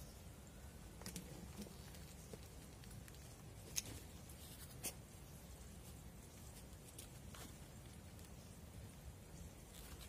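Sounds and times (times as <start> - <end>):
leaves rustling and crackling: 1.0 - 10.0.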